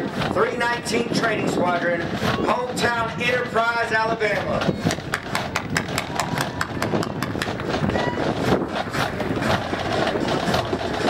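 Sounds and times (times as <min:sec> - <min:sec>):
murmur of crowd voices: 0:00.0 - 0:11.0.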